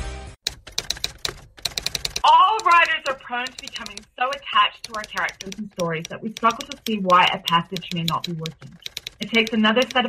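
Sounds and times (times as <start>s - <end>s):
typewriter keys clacking: 0.4s - 10.0s.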